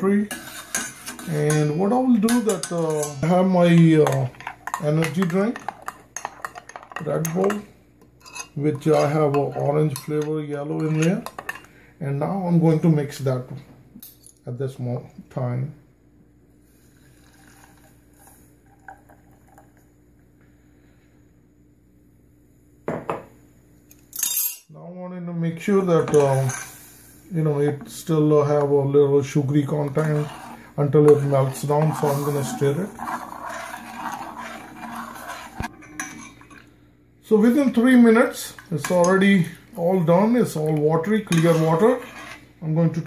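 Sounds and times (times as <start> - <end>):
metal spoon stirring in saucepan: 0.0 - 11.7, 27.8 - 36.7, 37.4 - 42.6.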